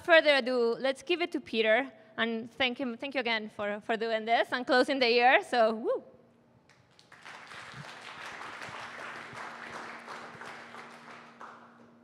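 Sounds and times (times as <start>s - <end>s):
audience applauding: 6.7s - 12.0s.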